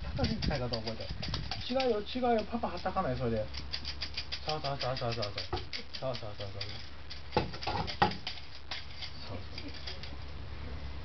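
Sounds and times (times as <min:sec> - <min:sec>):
low steady room hum: 0:00.0 - 0:11.0
plastic toy tapping wall: 0:00.2 - 0:03.0, 0:03.6 - 0:06.6.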